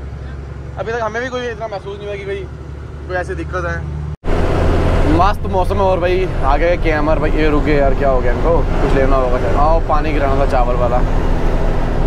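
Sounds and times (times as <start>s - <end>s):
road noise: 0.0s - 12.0s
truck diesel engine droning: 0.0s - 12.0s
people talking: 0.8s - 2.5s, 3.1s - 3.8s, 5.0s - 11.1s.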